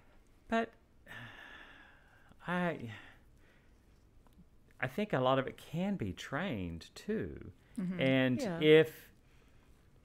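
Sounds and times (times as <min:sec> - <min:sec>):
person breathing in: 0:01.1 - 0:02.2
person speaking: 0:07.8 - 0:09.0.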